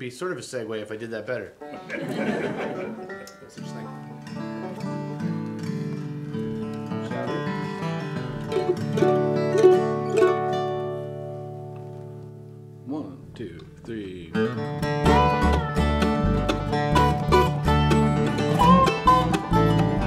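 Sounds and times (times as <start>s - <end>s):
bluegrass string band playing: 1.6s - 11.7s, 14.3s - 20.0s
burst of laughter: 1.7s - 3.1s.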